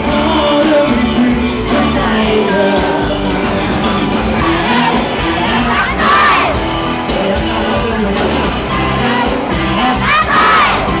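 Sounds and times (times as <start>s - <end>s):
live pop band music: 0.0s - 11.0s
audience screaming and cheering: 0.1s - 11.0s.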